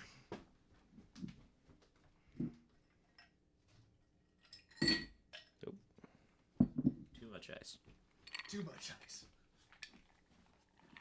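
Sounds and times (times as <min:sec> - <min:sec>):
ice cubes clinking into glass: 0:08.3 - 0:08.8.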